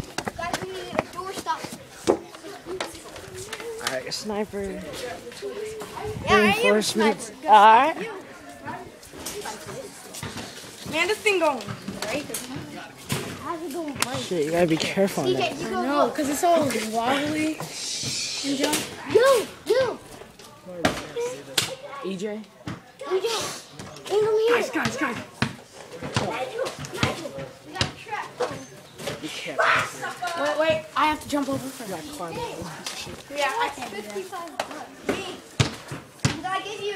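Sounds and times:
children talking quietly: 0.0 - 36.9.

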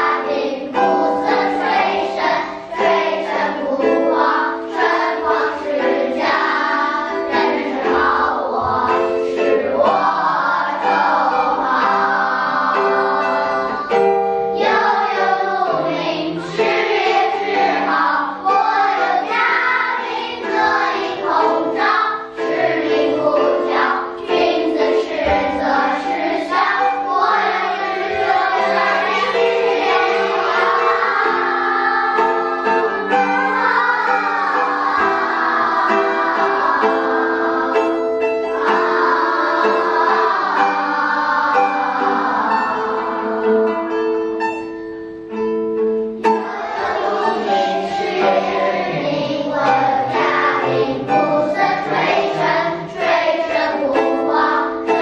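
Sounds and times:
children's choir singing: 0.0 - 55.0.

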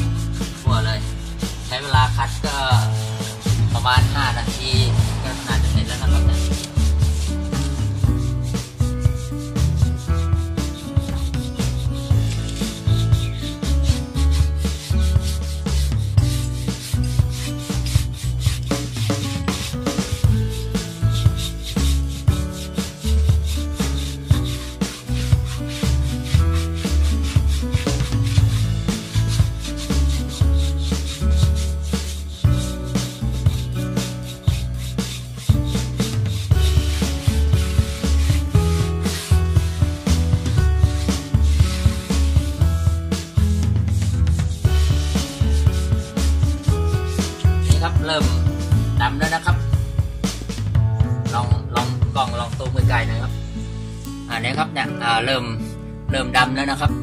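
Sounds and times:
brush scrubbing rubber tyre: 0.0 - 49.7
music with steady bass beat: 0.0 - 54.3.

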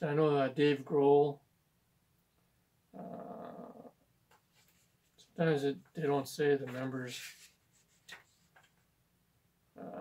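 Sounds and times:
man saying uhh: 2.9 - 4.0, 9.8 - 10.0.

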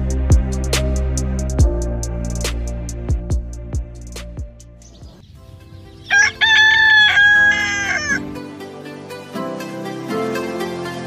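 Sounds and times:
soft background music: 0.0 - 11.0
rooster crowing: 6.0 - 8.4.

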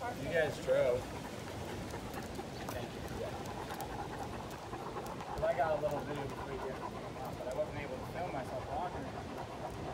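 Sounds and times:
street background noise: 0.0 - 9.9.

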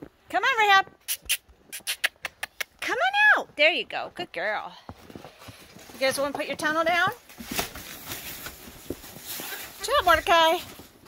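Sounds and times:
nylon tunnel rustling: 5.0 - 11.0.

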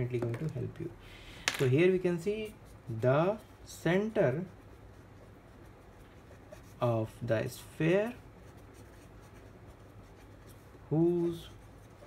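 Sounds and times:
marker writing on paper: 2.4 - 12.0.

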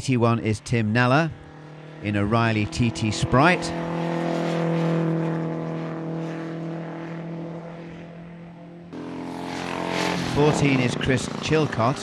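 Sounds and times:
racing car engine at high speed: 0.1 - 12.0.

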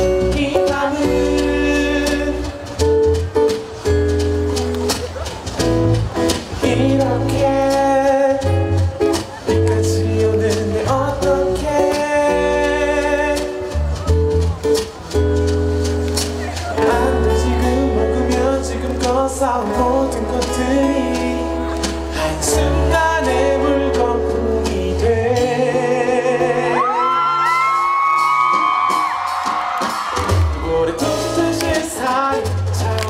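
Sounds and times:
sustained bass notes: 0.0 - 27.3.

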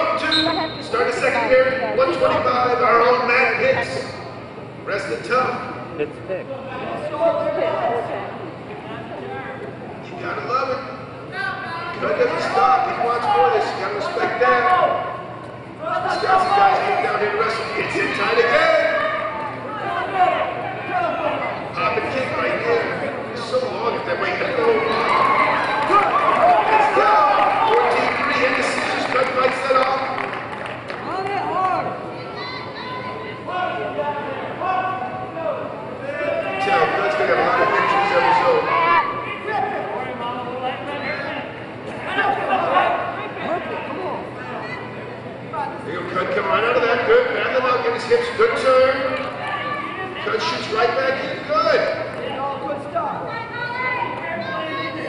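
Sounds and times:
large hall background noise: 0.0 - 55.0
voices talking and calling out: 0.0 - 55.0.

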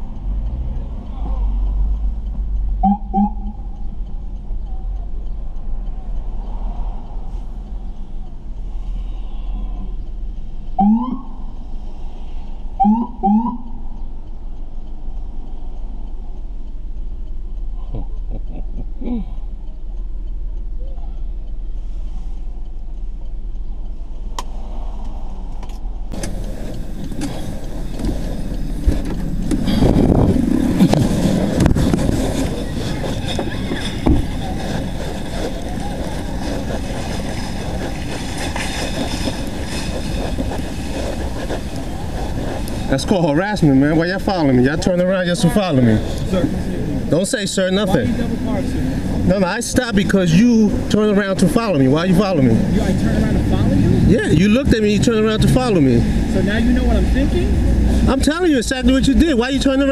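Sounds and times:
car interior hum: 0.0 - 59.9
street traffic noise: 0.0 - 59.9
rumbling bumps: 19.4 - 59.9.

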